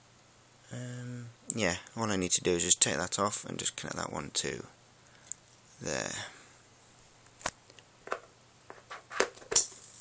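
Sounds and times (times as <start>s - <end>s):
faint steady transformer buzz: 0.0s - 10.0s
clicks of wires being handled: 7.2s - 9.8s.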